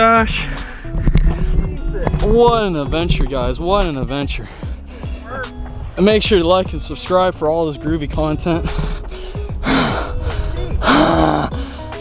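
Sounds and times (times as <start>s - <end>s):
background music: 0.0s - 12.0s
man gasping for breath: 8.8s - 12.0s.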